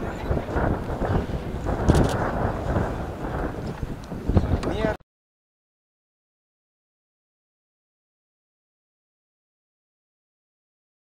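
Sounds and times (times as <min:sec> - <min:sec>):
wind buffeting microphone: 0:00.0 - 0:05.0.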